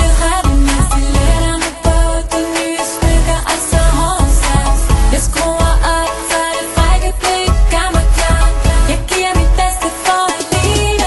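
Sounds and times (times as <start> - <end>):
music with bass and drum beat: 0.0 - 11.0.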